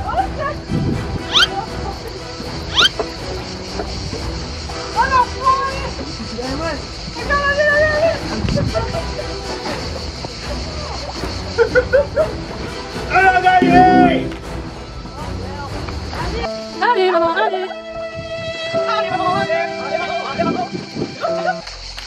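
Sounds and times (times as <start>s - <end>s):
background music with steady beat: 13.4s - 15.2s.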